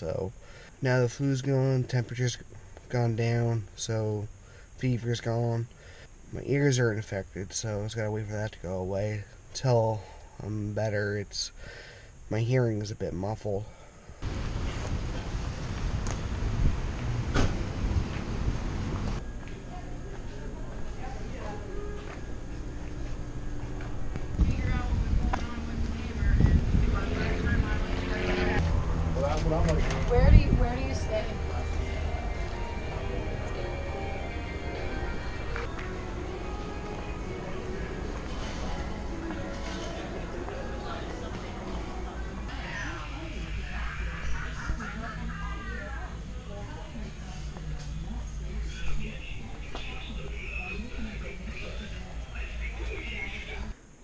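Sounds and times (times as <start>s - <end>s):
steady low hum: 0.0s - 54.0s
background voices: 13.6s - 53.8s
wind buffeting microphone: 14.3s - 19.2s, 24.2s - 28.6s, 29.9s - 30.8s.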